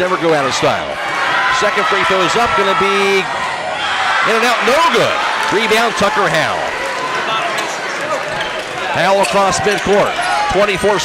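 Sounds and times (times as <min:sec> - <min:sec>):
crowd noise in gymnasium: 0:00.0 - 0:11.0.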